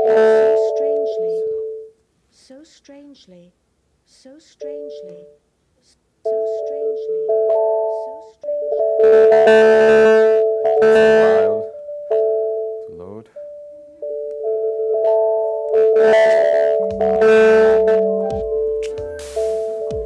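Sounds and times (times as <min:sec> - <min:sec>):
repeating pitch sweep: 0:06.3 - 0:12.6, 0:13.4 - 0:20.0
sustained synthesized tones: 0:06.3 - 0:20.0.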